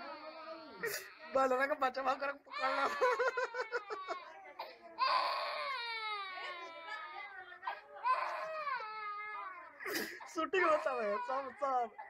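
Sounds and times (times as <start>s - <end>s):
baby crying: 0.0s - 1.5s, 2.5s - 12.0s.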